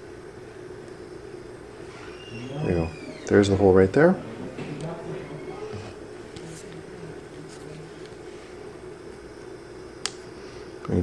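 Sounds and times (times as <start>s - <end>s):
steady low hum: 0.0s - 11.0s
faint handling sounds: 4.5s - 8.7s.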